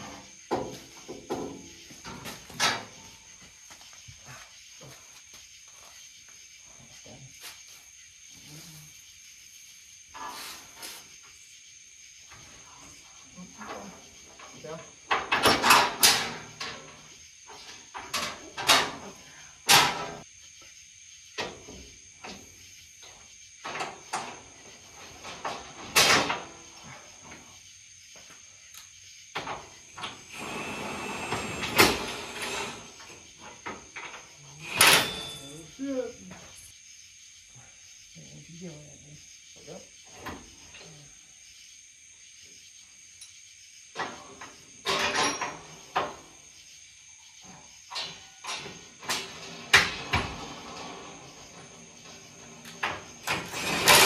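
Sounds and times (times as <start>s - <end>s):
metal clanks and knocks: 0.0s - 3.1s, 13.7s - 19.0s, 44.0s - 46.3s.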